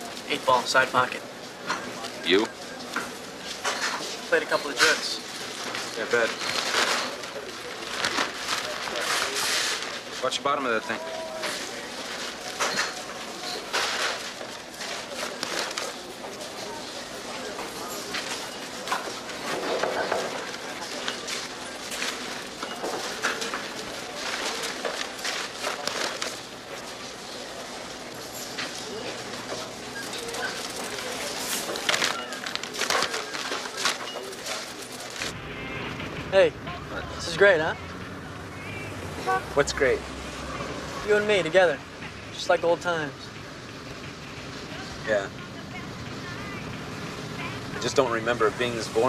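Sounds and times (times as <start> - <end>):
crowd chatter: 0.0 - 49.0.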